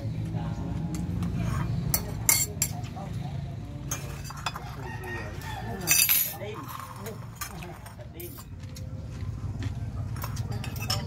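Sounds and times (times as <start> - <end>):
quiet talking: 0.0 - 11.0
cutlery clinking on plates: 1.0 - 3.0, 3.8 - 8.5, 10.2 - 11.0.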